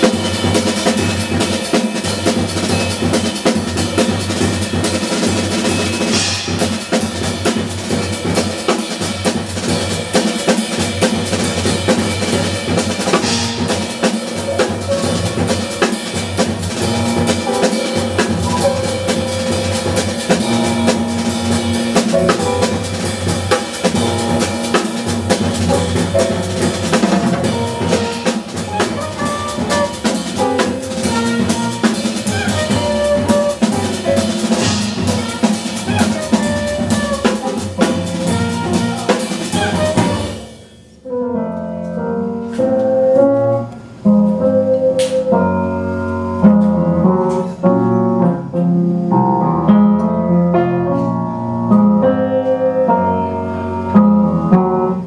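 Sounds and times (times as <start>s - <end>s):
jazz drum kit: 0.0s - 55.0s
small jazz band: 0.0s - 55.0s
double bass: 11.1s - 40.4s, 41.1s - 55.0s.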